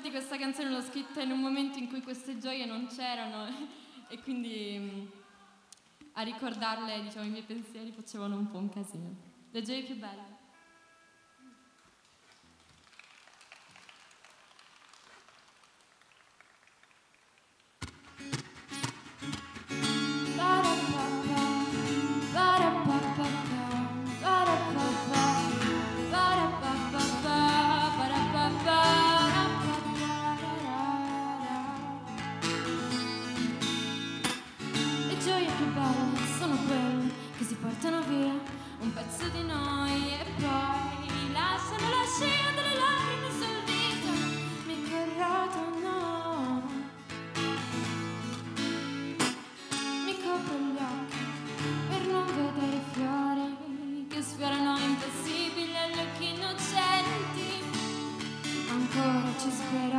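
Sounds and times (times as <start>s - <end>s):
woman singing: 0.0s - 5.4s, 20.2s - 32.3s, 35.0s - 47.0s, 49.9s - 59.9s
acoustic guitar playing: 17.8s - 59.9s.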